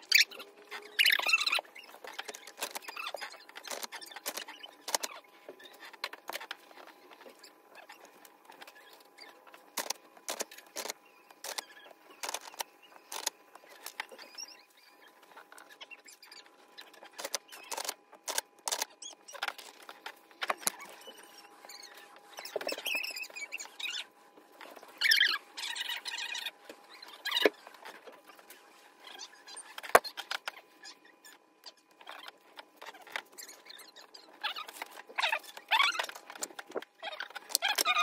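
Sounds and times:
faint steady hum: 0.0 - 38.0.

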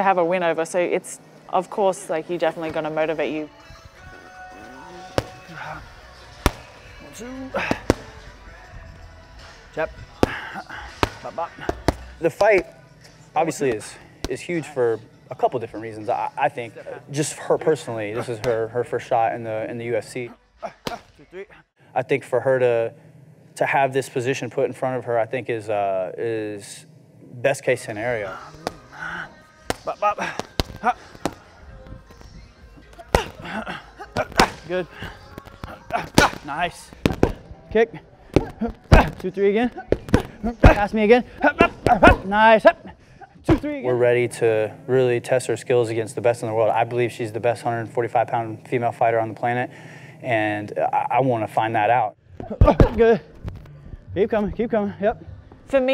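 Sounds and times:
low gym background noise: 0.0 - 55.9
boxing gloves smacking focus mitts: 5.1 - 5.8, 6.4 - 6.8, 7.6 - 8.2, 10.2 - 12.7, 20.8 - 21.2, 29.6 - 37.5, 38.3 - 42.4.

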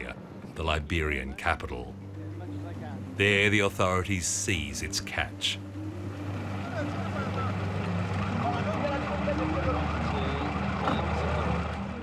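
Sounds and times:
boat engine droning: 1.7 - 12.0.

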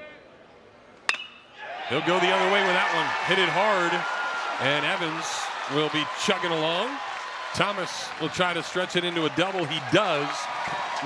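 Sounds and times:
metal bat hitting ball: 1.1 - 1.5.

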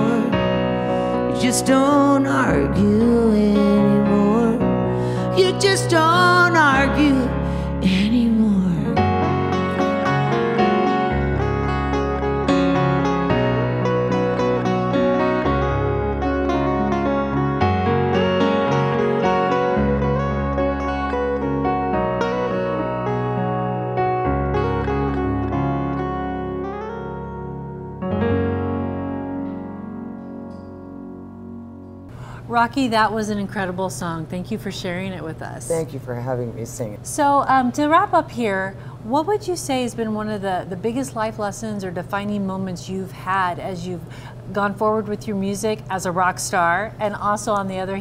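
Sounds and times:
digital piano playing chords: 0.0 - 32.2
electric guitar playing: 0.0 - 32.3.

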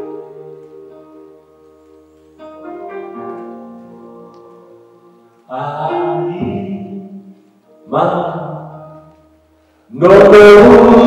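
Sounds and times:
keyboard chords: 0.0 - 11.0
man singing: 5.5 - 9.0, 9.9 - 11.0.

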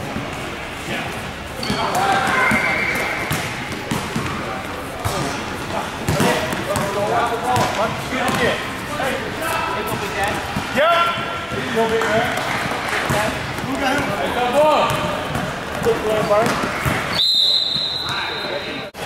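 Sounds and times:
players' voices and shouts: 0.9 - 19.0
basketball bouncing on gym floor: 3.2 - 4.4, 6.1 - 8.6, 9.9 - 17.1.

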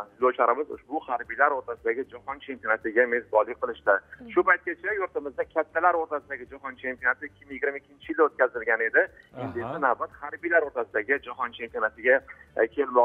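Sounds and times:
man talking over telephone: 0.0 - 13.0.

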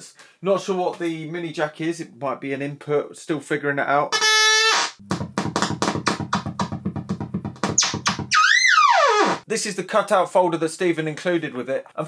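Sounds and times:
synthesizer buzzy tone: 4.2 - 9.4
synthesizer pitch sweep: 5.0 - 9.4.

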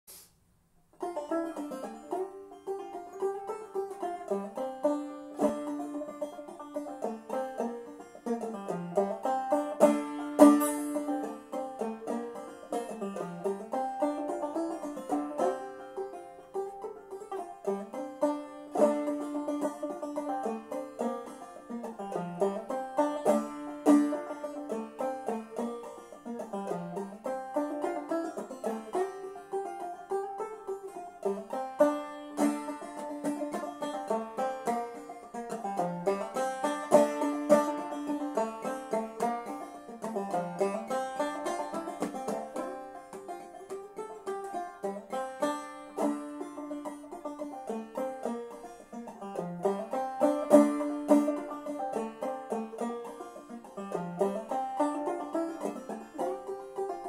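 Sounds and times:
banjo plucking old-time tune: 0.9 - 57.0.

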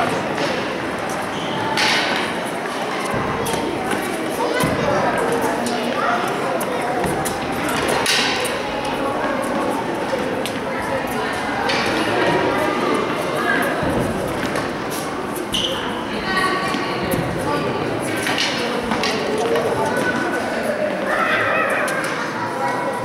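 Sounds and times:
children calling out: 19.8 - 23.0.

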